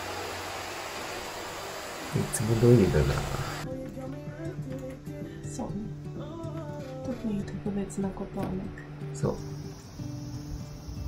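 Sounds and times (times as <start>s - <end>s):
vacuum cleaner running: 0.0s - 3.6s, 9.4s - 11.0s.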